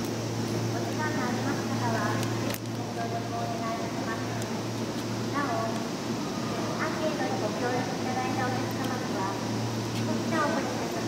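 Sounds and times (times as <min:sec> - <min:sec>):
people talking: 0:00.8 - 0:04.6, 0:05.3 - 0:05.9, 0:06.7 - 0:11.0.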